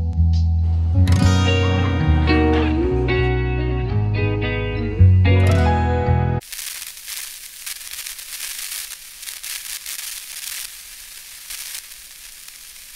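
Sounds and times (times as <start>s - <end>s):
guitar music: 0.8s - 6.4s
crackling hiss: 6.4s - 12.9s.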